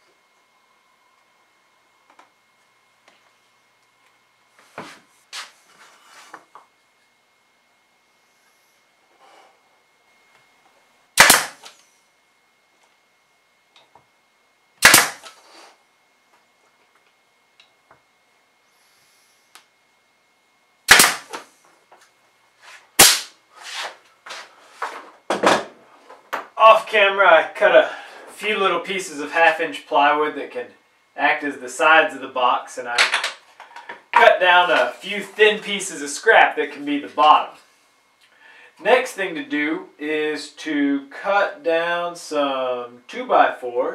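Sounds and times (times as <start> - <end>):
pneumatic nailer shots: 11.2 - 11.8, 14.8 - 15.6, 20.9 - 21.5, 23.0 - 23.4.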